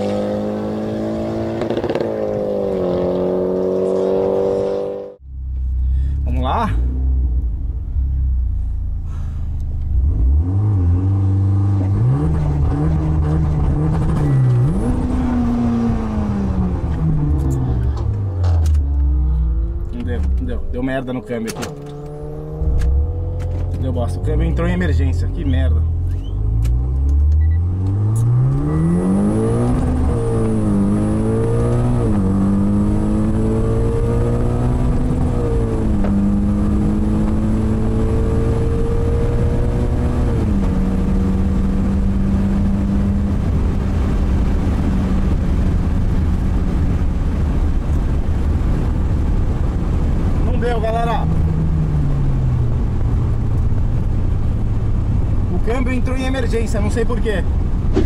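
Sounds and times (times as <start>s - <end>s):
car engine accelerating through gears: 0.0s - 5.2s, 9.1s - 24.9s, 25.5s - 56.0s.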